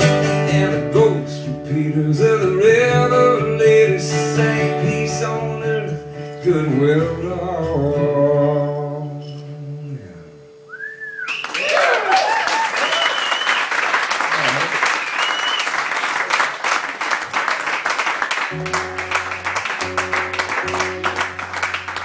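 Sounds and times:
acoustic guitar notes: 0:00.0 - 0:11.1, 0:18.5 - 0:22.0
loud whistles: 0:10.7 - 0:13.9, 0:14.8 - 0:15.8
audience clapping and cheering: 0:11.3 - 0:22.0.

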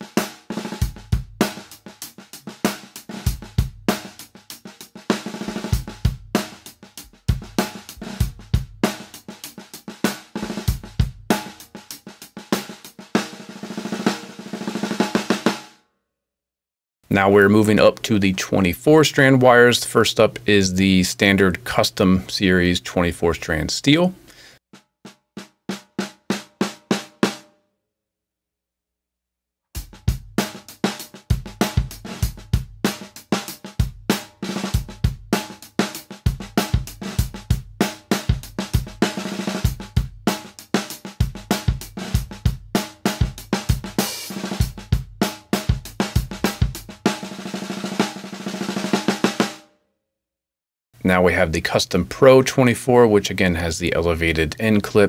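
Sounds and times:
snare drum single strokes: 0:00.0 - 0:15.6, 0:30.4 - 0:49.5
drum kit groove: 0:00.0 - 0:15.7, 0:17.1 - 0:27.4, 0:29.8 - 0:49.6, 0:51.0 - 0:55.0.

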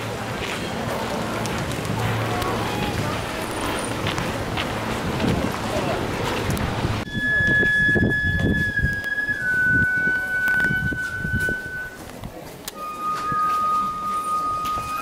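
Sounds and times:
low murmur: 0:00.0 - 0:15.0
outdoor crowd voices: 0:00.0 - 0:15.0
flute-like wind instrument: 0:07.0 - 0:15.0.

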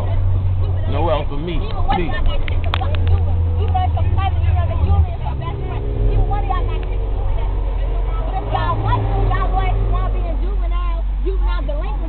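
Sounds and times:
bus engine rumbling: 0:00.0 - 0:12.0
passengers chattering: 0:00.0 - 0:12.0.

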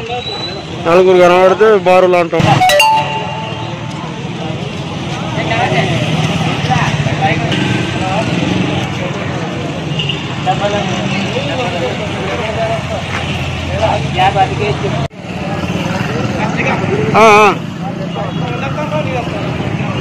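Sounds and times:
low street noise hum: 0:00.0 - 0:20.0.

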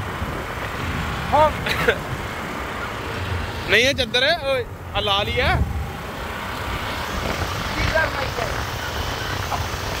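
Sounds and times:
wind and road noise: 0:00.0 - 0:10.0.

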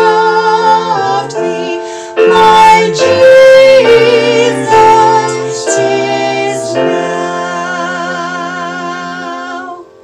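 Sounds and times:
people singing a hymn together: 0:00.0 - 0:10.0.

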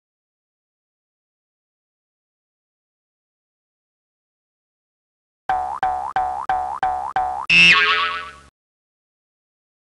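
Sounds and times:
cartoon springy boings: 0:05.5 - 0:08.5
ringing downward slide effect: 0:07.5 - 0:08.5.

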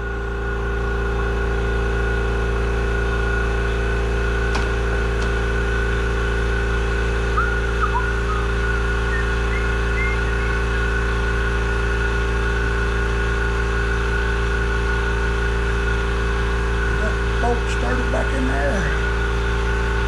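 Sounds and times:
shop machinery droning: 0:00.0 - 0:20.0.

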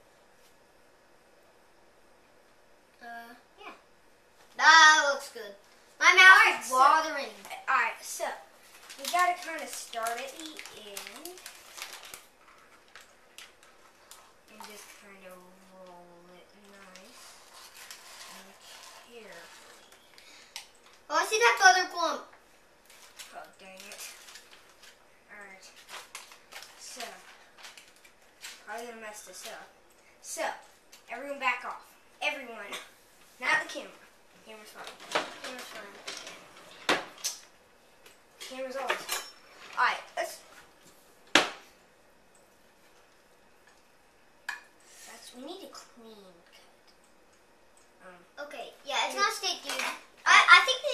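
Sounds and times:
parchment paper rustling: 0:05.7 - 0:21.6, 0:22.8 - 0:29.7.

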